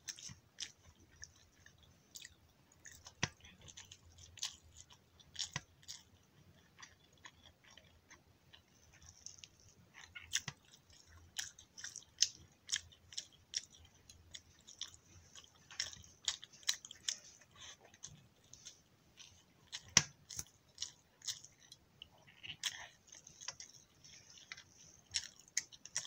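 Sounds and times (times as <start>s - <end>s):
chewing: 0.0s - 26.0s.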